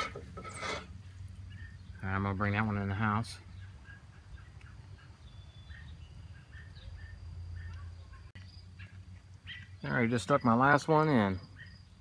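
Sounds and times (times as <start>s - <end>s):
bird chirps: 1.2s - 2.1s, 3.4s - 12.0s.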